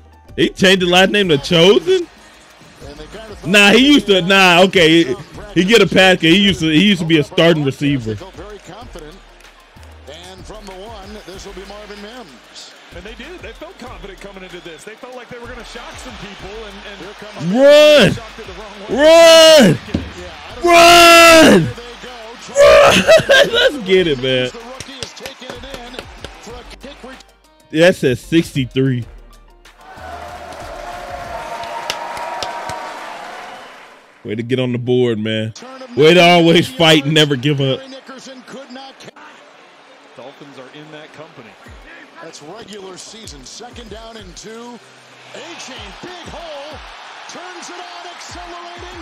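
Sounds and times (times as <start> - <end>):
music: 0.0 - 49.0
man commentating: 0.3 - 2.1, 2.8 - 9.2, 10.0 - 29.1, 34.2 - 39.5, 40.2 - 49.0
crowd din: 0.5 - 10.4, 11.2 - 26.6, 35.7 - 49.0.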